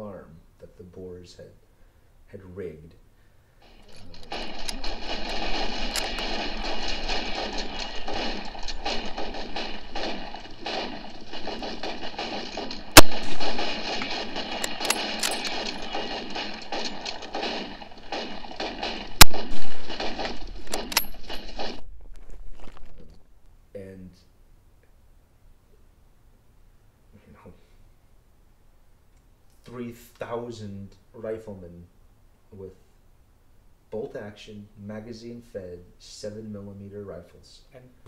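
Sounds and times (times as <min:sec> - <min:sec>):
massed rifle fire: 0:03.6 - 0:21.9
loud single gunshots: 0:04.2 - 0:21.8.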